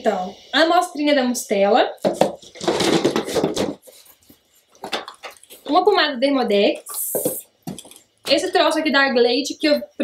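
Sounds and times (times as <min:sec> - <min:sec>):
packaging rustling and clattering: 0:02.0 - 0:05.8.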